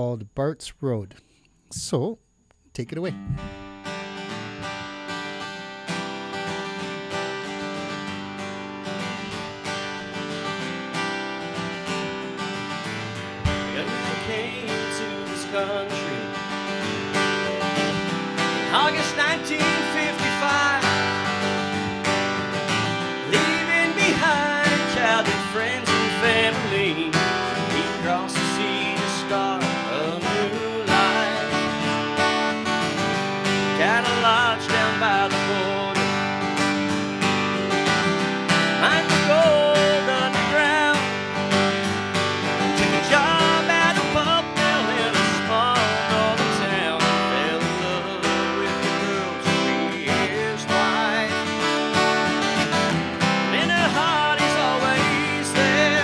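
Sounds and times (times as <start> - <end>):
acoustic guitar strumming: 3.0 - 56.0
man singing: 13.4 - 22.0, 22.8 - 33.0, 33.6 - 36.5, 38.7 - 41.8, 42.4 - 52.7, 53.4 - 56.0.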